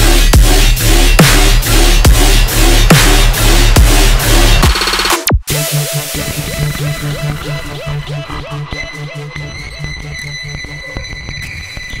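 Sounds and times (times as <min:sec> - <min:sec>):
pulsing bass: 0:00.0 - 0:11.8.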